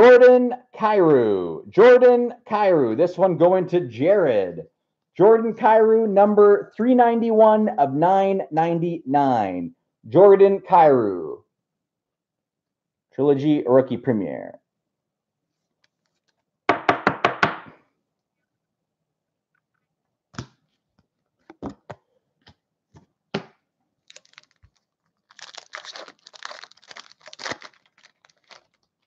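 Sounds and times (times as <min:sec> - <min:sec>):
plastic crinkling: 0:24.0 - 0:29.0.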